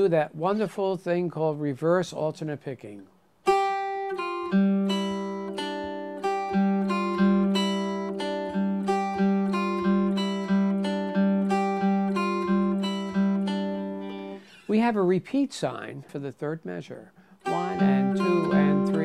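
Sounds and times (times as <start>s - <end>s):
guitar picked single notes: 3.5s - 14.7s, 17.4s - 19.0s.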